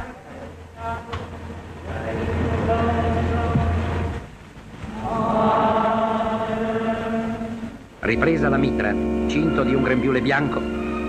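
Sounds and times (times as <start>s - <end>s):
choir chanting sustained chord: 0.0s - 4.2s, 4.9s - 11.0s.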